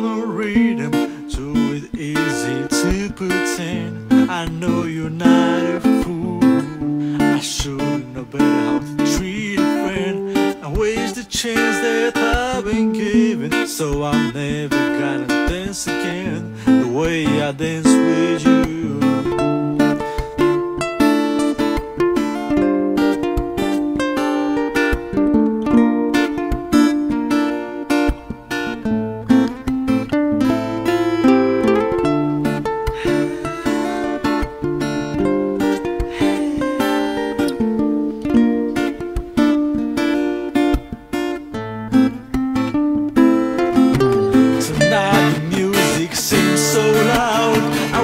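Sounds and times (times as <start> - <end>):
acoustic guitar melody: 0.0 - 48.0.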